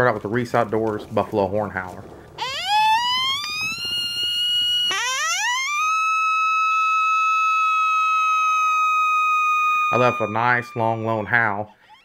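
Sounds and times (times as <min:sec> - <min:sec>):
coyote howler call: 0:02.4 - 0:12.0.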